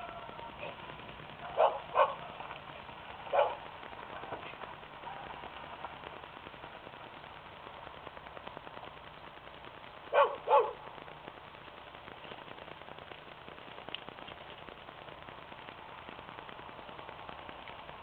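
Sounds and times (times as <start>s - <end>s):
faint outdoor background noise: 0.0s - 18.0s
dog barking: 1.5s - 2.3s, 3.3s - 3.7s, 10.1s - 10.9s.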